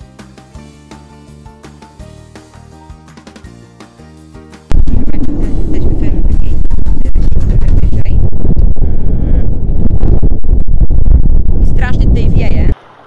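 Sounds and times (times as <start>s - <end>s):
wind buffeting microphone: 4.7s - 12.8s.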